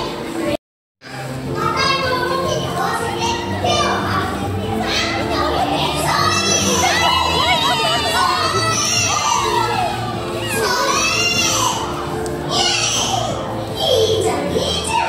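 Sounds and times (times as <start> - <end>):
background music: 0.0 - 15.0
children shouting and squealing: 1.1 - 15.0.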